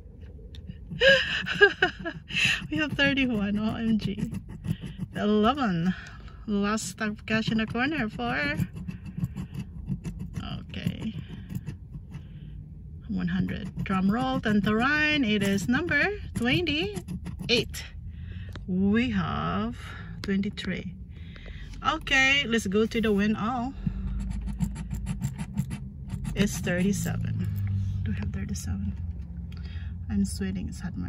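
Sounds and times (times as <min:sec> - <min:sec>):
low steady hum: 0:00.0 - 0:31.0
scratching lottery ticket coating: 0:00.7 - 0:12.5, 0:13.2 - 0:17.8, 0:23.9 - 0:27.1.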